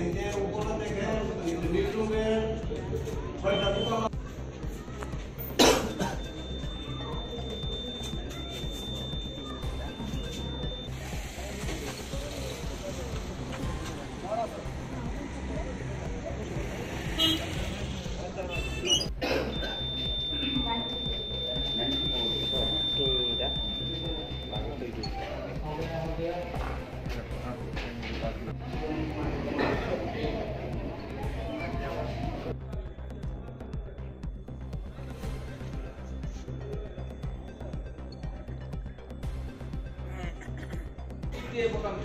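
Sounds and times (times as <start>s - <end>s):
murmur of people talking: 0.0s - 42.0s
high-pitched electronic beep: 3.4s - 4.1s, 5.4s - 11.2s, 18.5s - 26.3s.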